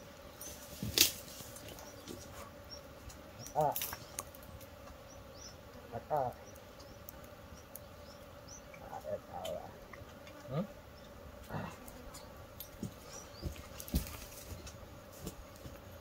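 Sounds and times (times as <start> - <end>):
bees humming: 0.0 - 16.0
men's voices calling: 3.4 - 4.1, 5.8 - 7.0, 8.5 - 10.8.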